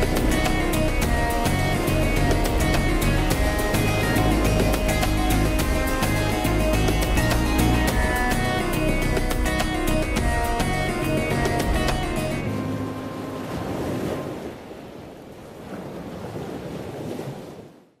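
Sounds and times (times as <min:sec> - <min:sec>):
music with a beat: 0:00.0 - 0:12.4
ocean surf: 0:00.0 - 0:18.0.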